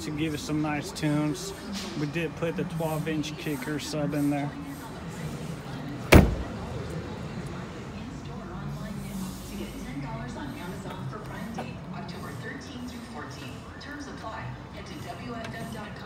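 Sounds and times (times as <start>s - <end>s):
car trunk lid slamming: 6.1s - 6.7s.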